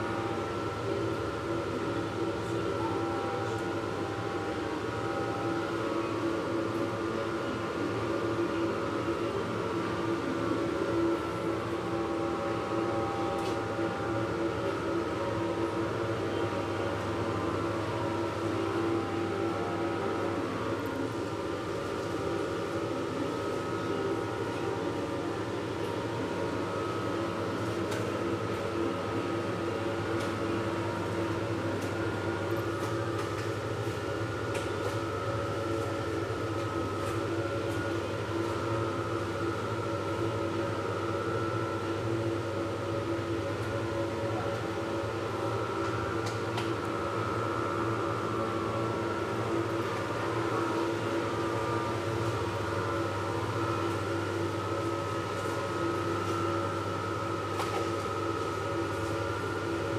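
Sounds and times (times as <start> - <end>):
refrigeration fans humming: 0.0 - 59.9.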